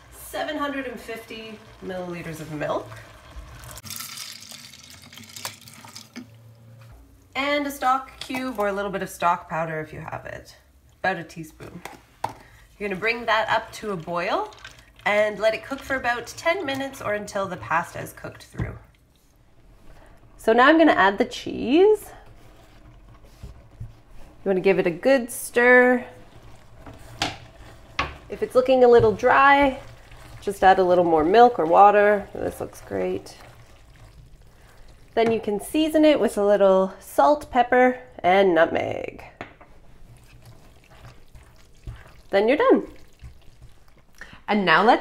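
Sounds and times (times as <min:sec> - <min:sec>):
milk pouring into a pot: 0:00.8 - 0:06.4, 0:12.5 - 0:18.4, 0:26.2 - 0:35.7, 0:39.9 - 0:44.3
spoon scraping pot: 0:39.7 - 0:42.3.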